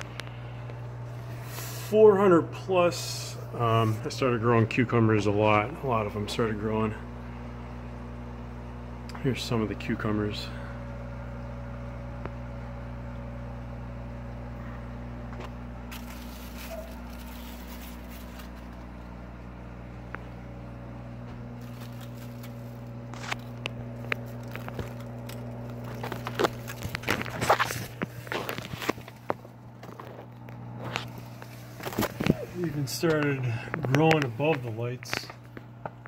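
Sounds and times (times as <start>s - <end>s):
fan humming: 0.0s - 36.0s
leaves brushing against phone: 15.9s - 18.8s, 21.6s - 24.4s.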